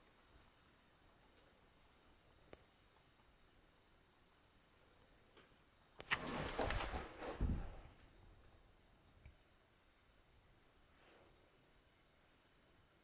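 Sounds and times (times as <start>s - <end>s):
rustling and scraping: 6.0s - 8.1s.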